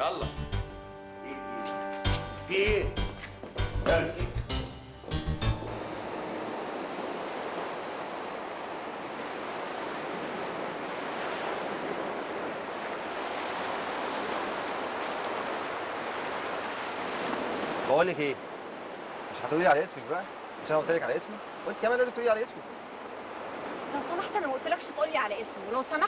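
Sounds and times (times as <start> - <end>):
sea surf breaking on beach: 5.7 - 26.0.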